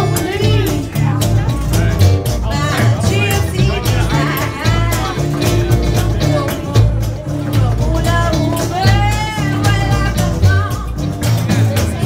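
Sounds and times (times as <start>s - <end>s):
strummed acoustic guitars: 0.0s - 12.0s
upright bass line: 0.0s - 12.0s
women singing: 0.0s - 12.0s.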